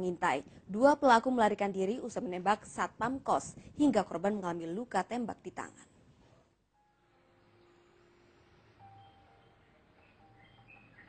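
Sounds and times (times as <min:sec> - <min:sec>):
faint steady tones: 0:06.7 - 0:11.0.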